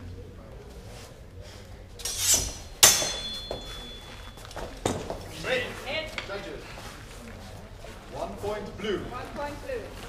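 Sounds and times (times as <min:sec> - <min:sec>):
metallic strike ringing: 0:02.0 - 0:04.5
swords clashing: 0:02.0 - 0:05.1.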